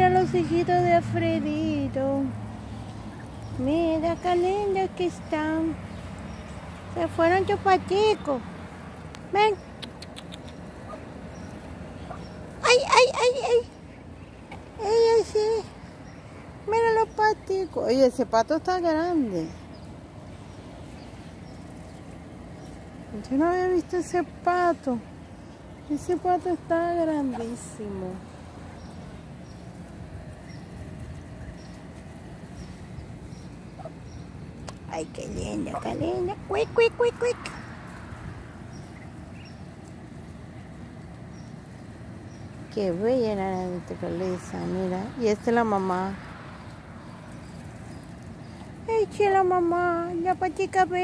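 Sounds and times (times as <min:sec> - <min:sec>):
ducklings peeping: 0:00.0 - 0:50.6
low outdoor rumble: 0:00.0 - 0:51.0.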